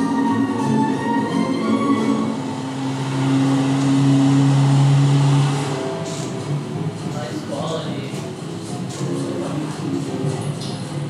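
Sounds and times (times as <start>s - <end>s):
low drone soundtrack from speakers: 0.0s - 11.0s.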